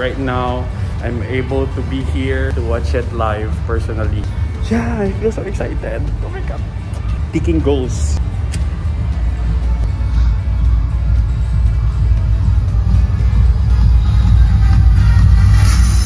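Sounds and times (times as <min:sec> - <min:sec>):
music with heavy bass: 0:00.0 - 0:16.0.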